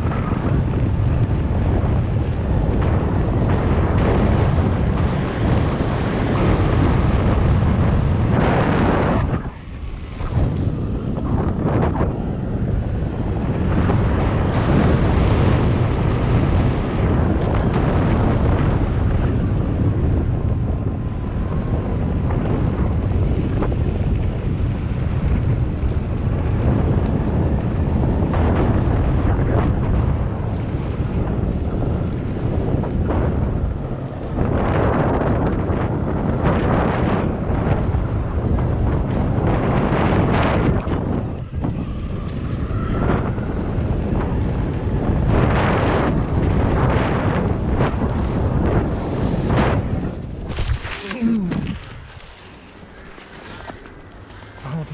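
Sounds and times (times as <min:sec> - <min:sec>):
tyres rolling on pavement and dirt: 0:00.0 - 0:54.9
wind buffeting microphone: 0:00.0 - 0:54.9.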